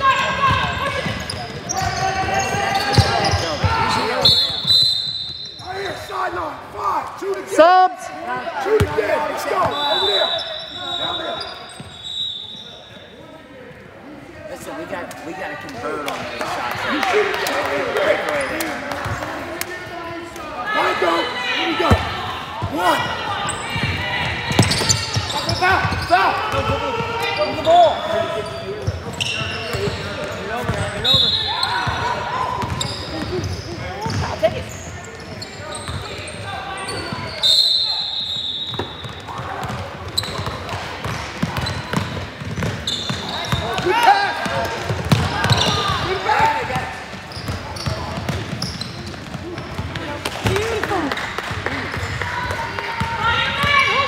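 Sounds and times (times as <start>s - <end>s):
voices calling out in gym: 0.0s - 54.0s.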